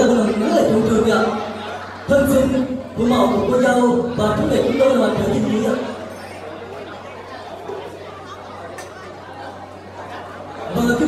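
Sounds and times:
indistinct chatter of many guests: 0:00.0 - 0:11.0.

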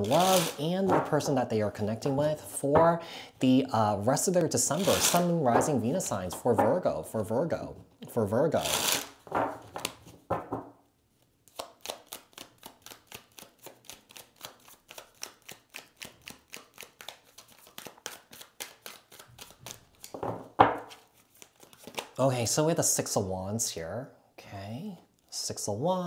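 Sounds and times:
cards being shuffled: 0:00.0 - 0:01.2, 0:04.7 - 0:05.8, 0:08.6 - 0:10.2, 0:11.5 - 0:20.2, 0:20.8 - 0:22.2.

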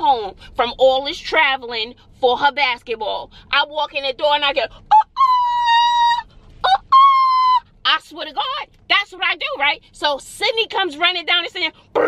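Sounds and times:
woman's loud calling cry: 0:04.9 - 0:07.6.

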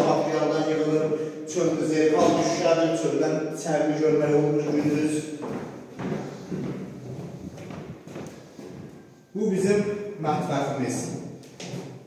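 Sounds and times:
footsteps on wooden floor: 0:02.1 - 0:02.6, 0:04.6 - 0:09.1, 0:11.1 - 0:12.0.

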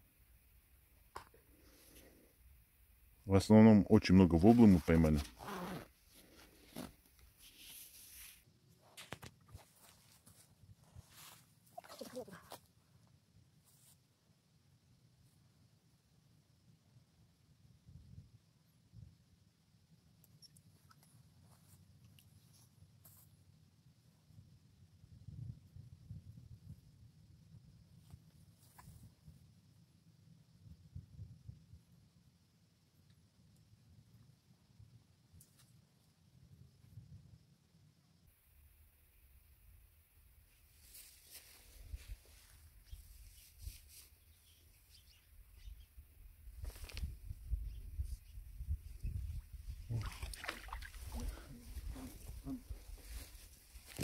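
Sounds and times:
wind rumble on microphone: 0:25.0 - 0:27.8, 0:30.6 - 0:31.9, 0:46.4 - 0:53.5.

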